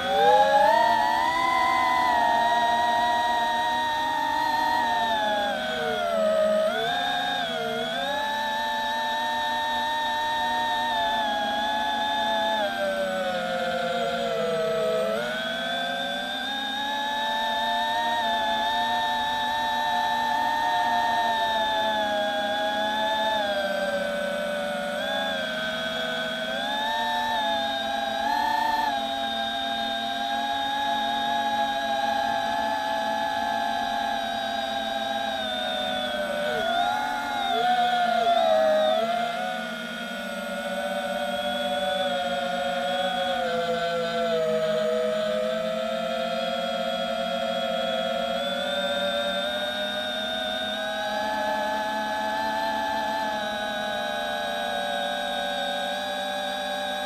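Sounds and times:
quadcopter motors whining: 0.0s - 57.0s.

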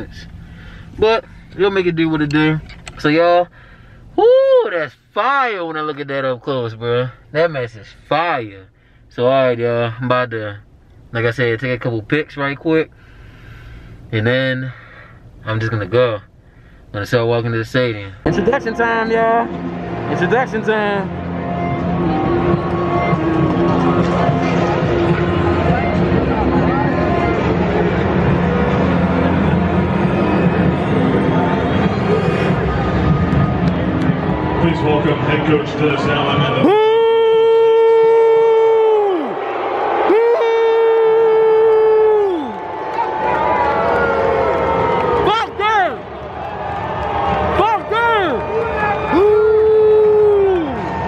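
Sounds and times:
loud horn blasts: 18.2s - 35.2s
music over public-address system: 18.3s - 36.6s
large crowd hubbub: 19.4s - 38.4s.

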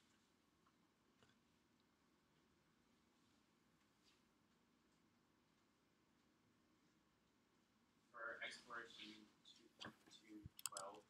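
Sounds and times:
soft computer mouse clicks: 10.5s - 11.0s.

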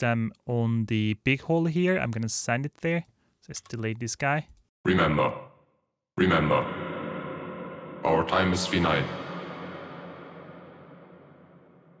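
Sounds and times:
reverberant spoken vocal: 4.9s - 12.0s.

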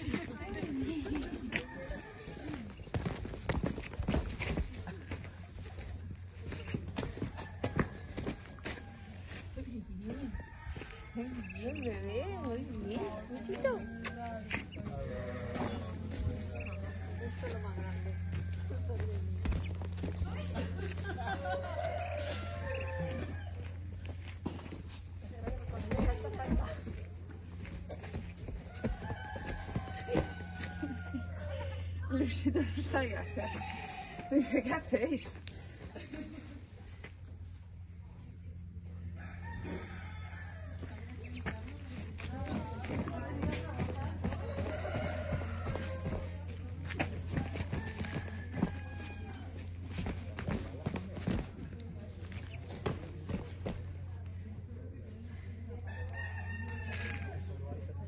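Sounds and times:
footsteps on gravelly dirt: 0.0s - 26.9s, 27.5s - 31.1s, 39.8s - 51.3s.

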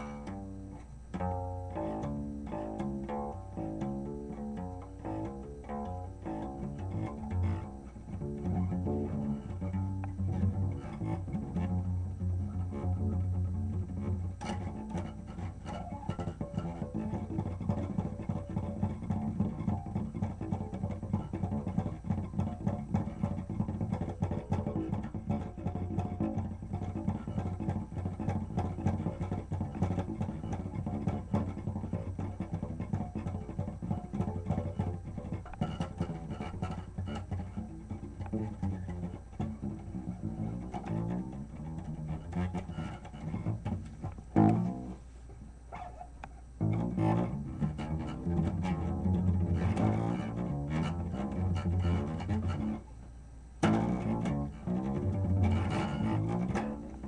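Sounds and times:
acoustic guitar picking: 0.0s - 57.0s.

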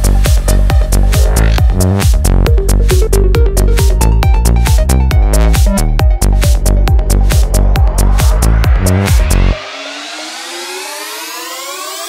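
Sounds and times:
rising synthesizer sweep: 1.0s - 12.0s.

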